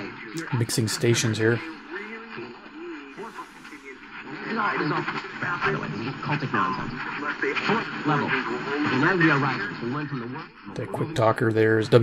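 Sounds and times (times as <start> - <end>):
overlapping radio station voice: 0.0 - 12.0
soft radio hiss: 0.0 - 12.0
weak am radio speech: 0.0 - 12.0.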